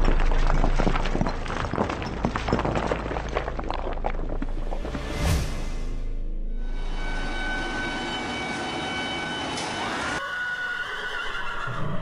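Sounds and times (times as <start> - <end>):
horse whinny: 10.3 - 12.0.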